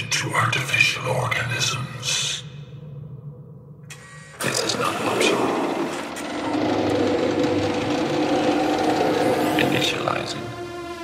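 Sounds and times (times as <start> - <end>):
low synth tones: 1.0 - 11.0
churning machine-like synth noise: 4.4 - 11.0.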